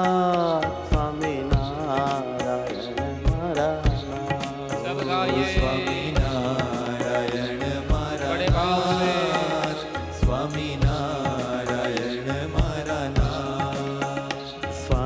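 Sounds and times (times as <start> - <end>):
wavering melody: 4.7 - 7.1.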